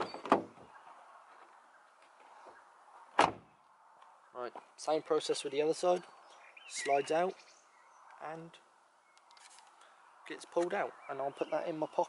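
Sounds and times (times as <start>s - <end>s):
car door shutting thud: 3.2s - 3.5s.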